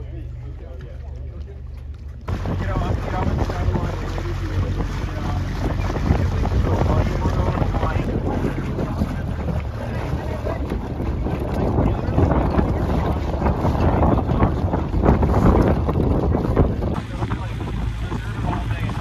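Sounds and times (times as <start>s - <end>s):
choppy water around boat: 0.0s - 19.0s
wind buffeting microphone: 2.2s - 19.0s.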